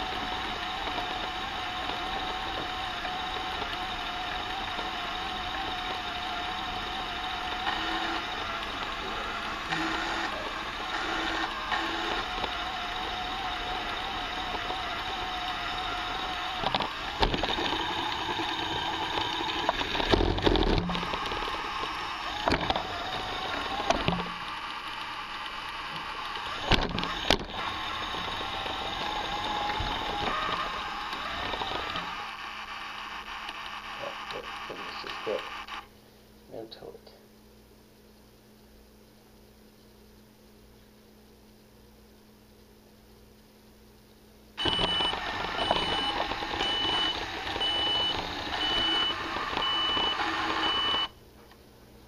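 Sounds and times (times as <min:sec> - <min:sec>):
small electric motor whirring: 0:00.0 - 0:35.9, 0:44.6 - 0:51.1
reversing beeper: 0:44.6 - 0:51.1.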